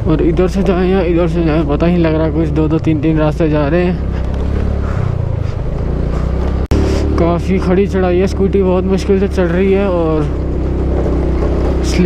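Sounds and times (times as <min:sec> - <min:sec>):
scooter engine running: 0:00.0 - 0:12.0
tyres on gravel: 0:00.0 - 0:12.0.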